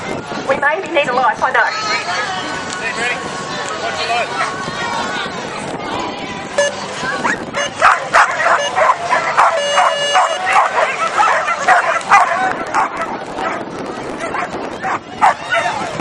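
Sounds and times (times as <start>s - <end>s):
dogs barking and yipping: 4.3s - 4.6s, 7.0s - 16.0s
steady electronic tone: 6.6s - 7.0s.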